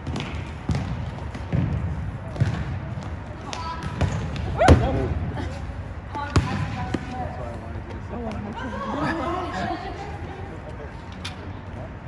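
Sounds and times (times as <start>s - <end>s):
ball struck on gym floor: 0.0s - 5.0s, 6.2s - 7.1s.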